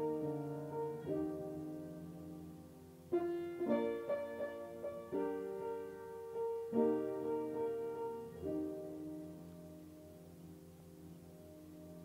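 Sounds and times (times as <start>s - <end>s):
piano notes and chords: 0.0s - 12.0s.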